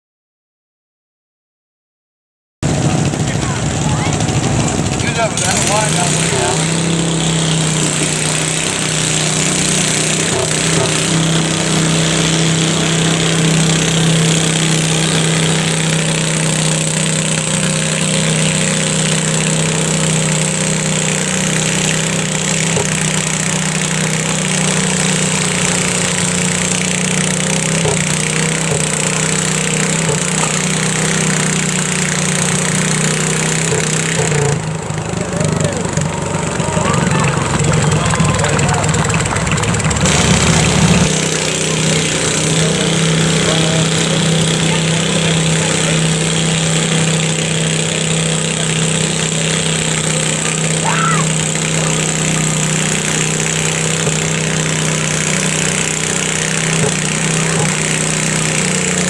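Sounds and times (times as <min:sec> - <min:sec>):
tractor engine under load: 0:02.6 - 0:59.0.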